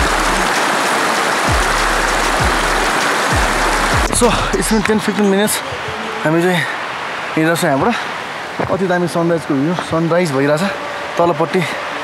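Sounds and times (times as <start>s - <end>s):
background music with deep bass: 0.0s - 6.4s
stream rushing over rocks: 0.0s - 12.0s.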